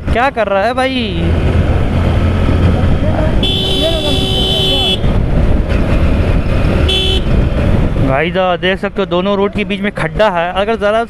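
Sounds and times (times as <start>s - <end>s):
wind rumble: 0.0s - 11.0s
motorcycle engine: 0.6s - 8.2s
vehicle horn: 3.4s - 5.1s, 6.8s - 7.4s.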